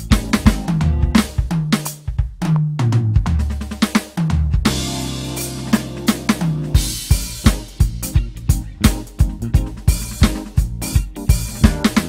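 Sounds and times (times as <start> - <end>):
bass line: 0.0 - 1.7, 4.5 - 12.0
electronic drum kit groove: 0.0 - 12.0.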